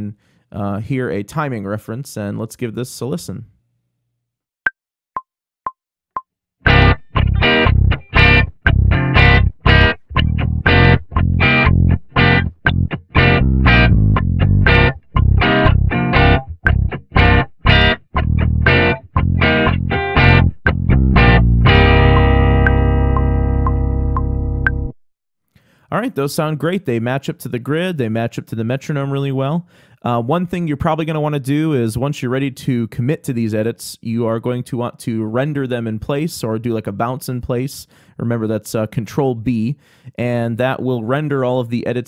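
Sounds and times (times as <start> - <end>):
distorted electric guitar chords: 6.6 - 24.9
electric bass: 6.7 - 25.0.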